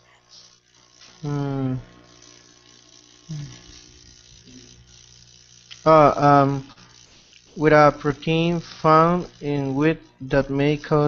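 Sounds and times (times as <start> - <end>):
video call line hum: 0.0 - 11.0
person saying mm: 1.2 - 1.8, 3.3 - 3.6.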